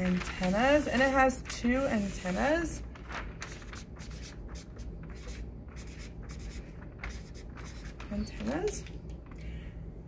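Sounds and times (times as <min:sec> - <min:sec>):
marker writing on paper: 0:04.0 - 0:08.6.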